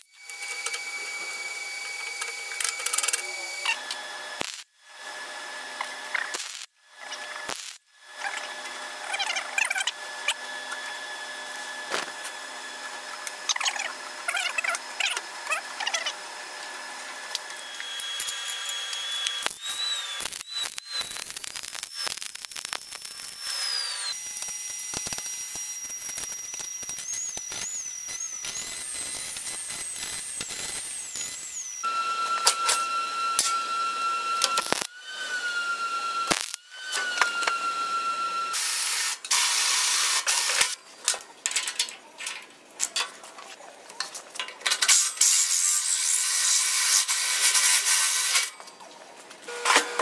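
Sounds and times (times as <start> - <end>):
power tool whining: 0.0 - 40.8, 49.5 - 50.0.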